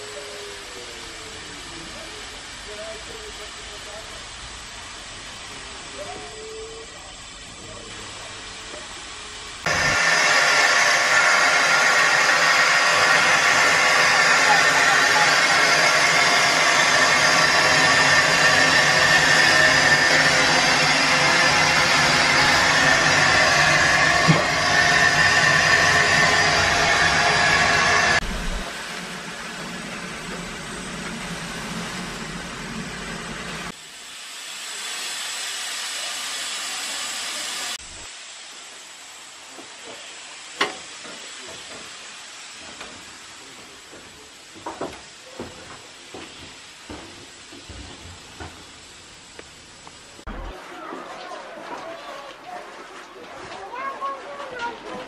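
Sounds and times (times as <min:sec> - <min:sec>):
steam hissing from locomotive: 0:00.0 - 0:50.6.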